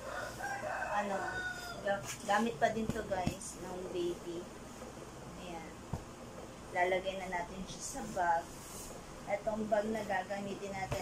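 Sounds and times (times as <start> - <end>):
woman speaking: 0.7 - 4.5, 5.3 - 5.9, 6.7 - 8.7, 9.3 - 11.0.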